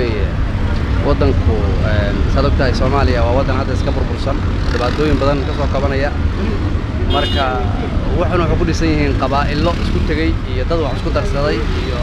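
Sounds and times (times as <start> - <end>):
low rumble of street noise: 0.0 - 12.0
man speaking: 1.0 - 12.0.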